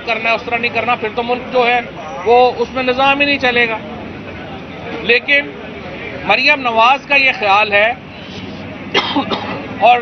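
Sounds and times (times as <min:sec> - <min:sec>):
man speaking: 0:00.0 - 0:03.9, 0:09.8 - 0:10.0
man clearing throat: 0:08.9 - 0:09.6.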